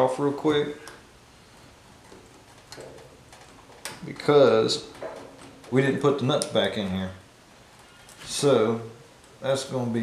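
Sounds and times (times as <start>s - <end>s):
air filter handling sounds: 0.8s - 8.5s.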